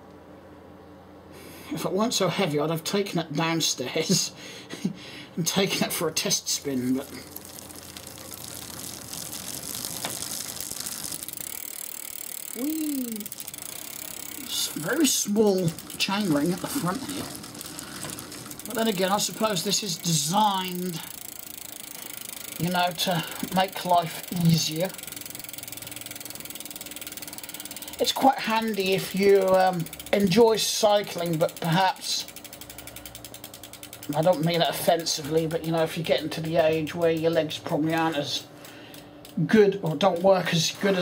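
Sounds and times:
bike chain running through derailleur: 0:06.3 - 0:41.0
freewheel ticking rapidly: 0:06.5 - 0:41.0.

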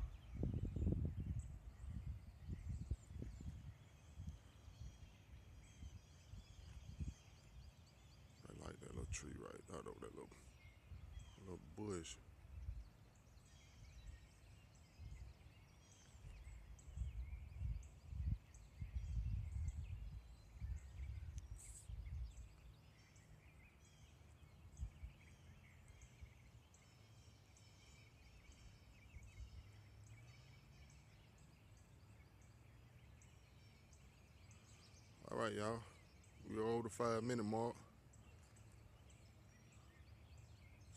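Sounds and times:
small birds chirping: 0:00.0 - 0:40.9.

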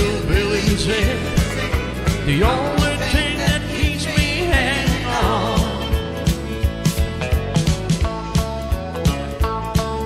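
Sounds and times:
person singing: 0:00.0 - 0:06.2
country band playing: 0:00.0 - 0:10.0
steady drum beat: 0:00.0 - 0:10.0.

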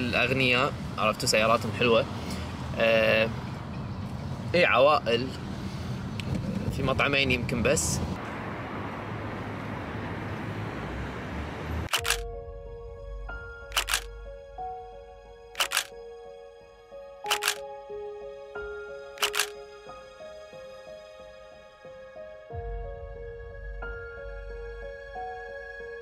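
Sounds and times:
camera shutter double clicks: 0:11.9 - 0:12.2, 0:13.7 - 0:14.1, 0:15.6 - 0:15.9, 0:17.3 - 0:17.6, 0:19.2 - 0:19.6
soft background music: 0:12.0 - 0:26.0.

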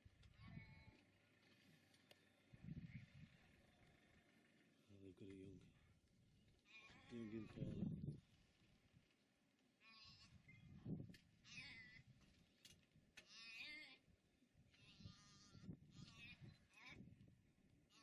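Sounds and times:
fawn bleating in distress: 0:06.7 - 0:07.7, 0:13.2 - 0:14.0, 0:14.8 - 0:17.0.

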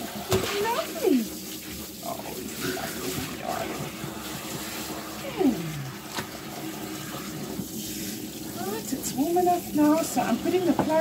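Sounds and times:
water spraying from a hose: 0:00.0 - 0:11.0.

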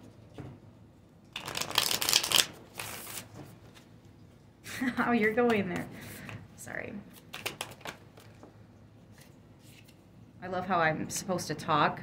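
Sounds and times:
cards being shuffled: 0:01.3 - 0:03.9, 0:07.1 - 0:08.5, 0:09.1 - 0:10.0.

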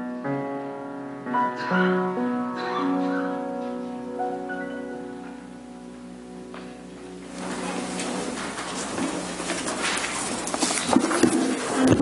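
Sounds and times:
rustling: 0:07.3 - 0:12.0.

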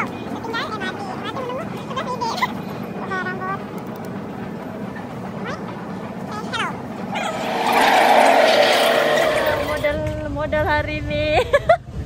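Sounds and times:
steady background rumble: 0:00.0 - 0:11.4.

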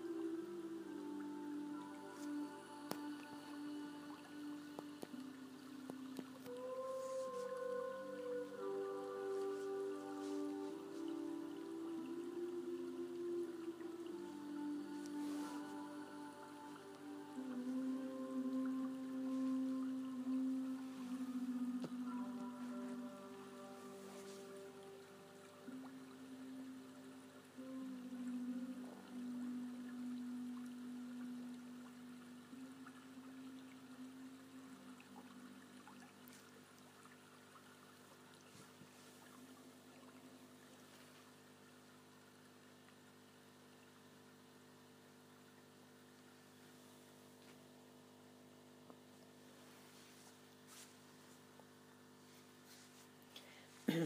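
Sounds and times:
low sustained musical tone: 0:00.0 - 0:54.0.

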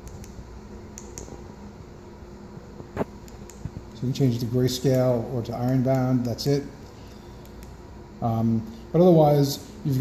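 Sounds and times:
room hum: 0:00.0 - 0:10.0.

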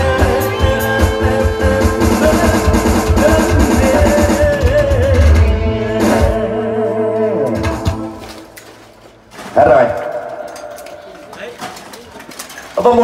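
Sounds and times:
man's voice: 0:00.0 - 0:08.0, 0:12.7 - 0:13.0
live band ending a song: 0:00.0 - 0:08.4.

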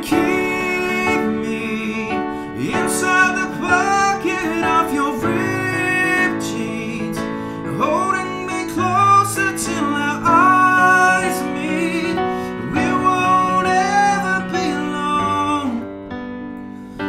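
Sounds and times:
man singing a pop ballad: 0:00.0 - 0:16.2
piano chords: 0:00.0 - 0:17.0.

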